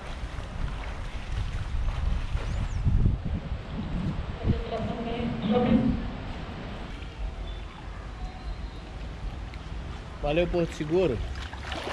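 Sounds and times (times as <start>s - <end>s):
wind buffeting microphone: 0.0s - 7.7s
faint high chirp: 7.4s - 9.0s.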